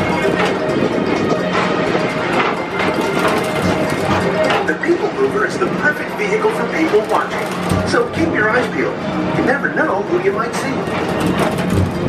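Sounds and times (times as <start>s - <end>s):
recorded narration: 4.4s - 11.0s.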